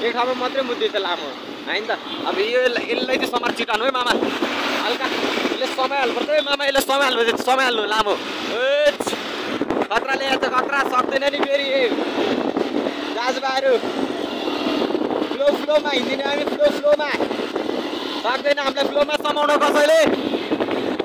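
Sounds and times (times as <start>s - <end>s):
man talking: 0.0s - 9.2s, 9.8s - 12.0s, 13.1s - 13.9s, 15.3s - 17.3s, 18.2s - 20.1s
traffic noise: 0.0s - 21.0s
wind noise: 1.4s - 21.0s.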